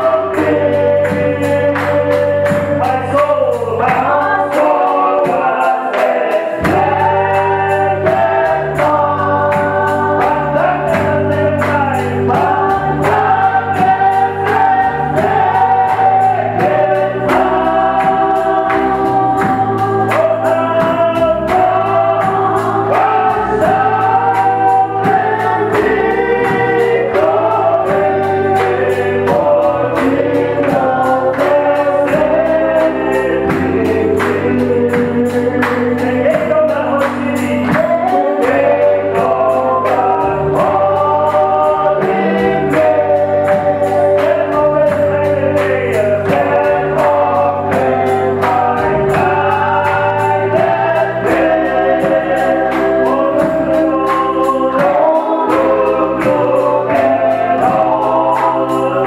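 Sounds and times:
instrumental backing: 0:00.0 - 0:59.0
percussive beat: 0:00.0 - 0:59.0
women singing gospel song: 0:00.0 - 0:59.0.

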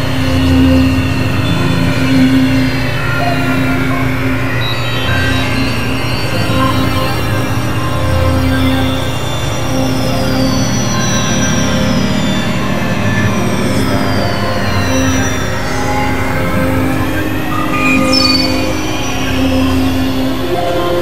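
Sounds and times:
high gliding whistling tones: 0:00.0 - 0:21.0
synthesizer drone: 0:00.0 - 0:21.0.

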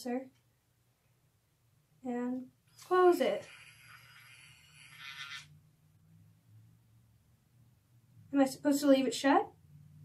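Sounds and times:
hair curler motor whirring: 0:02.8 - 0:05.5.

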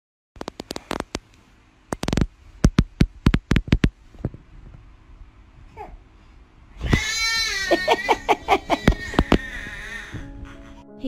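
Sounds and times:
infant crying: 0:06.8 - 0:10.8.

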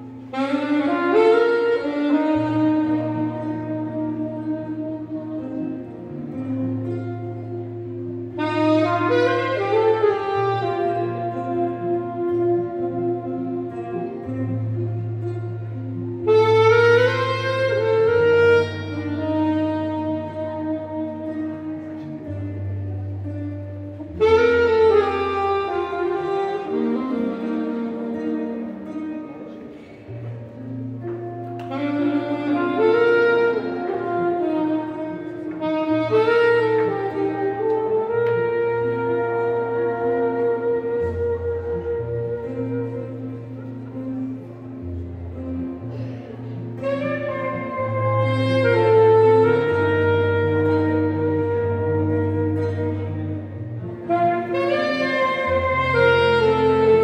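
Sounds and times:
acoustic guitar accompaniment: 0:00.0 - 0:57.0
saxophone playing held notes: 0:00.0 - 0:57.0.

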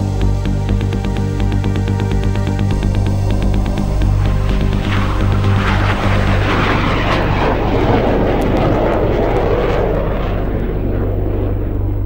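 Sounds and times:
jet aircraft roar: 0:00.0 - 0:12.0
low bass drone: 0:00.0 - 0:12.0.

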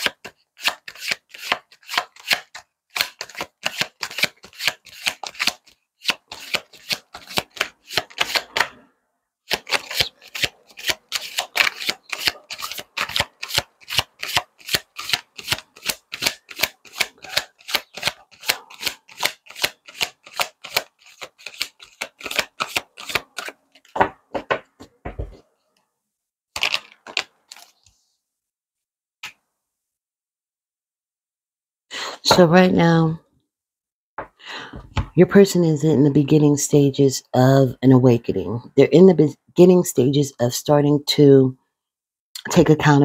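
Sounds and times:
cards being shuffled: 0:00.0 - 0:08.7, 0:09.5 - 0:24.0, 0:26.6 - 0:28.0, 0:29.2 - 0:29.4.

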